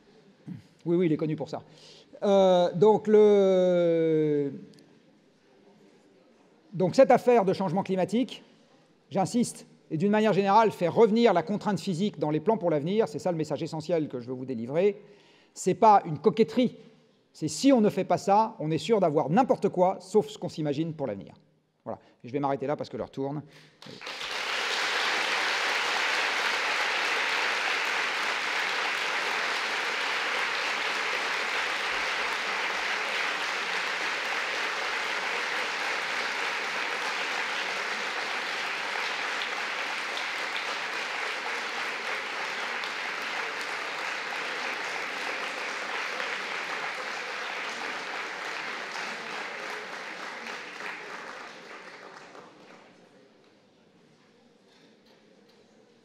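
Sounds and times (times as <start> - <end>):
large audience applauding: 23.8 - 53.0.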